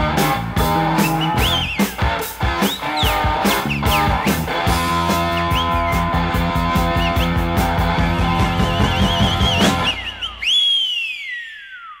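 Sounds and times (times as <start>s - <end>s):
rock band playing: 0.0s - 10.2s
high wavering guitar line: 0.0s - 10.4s.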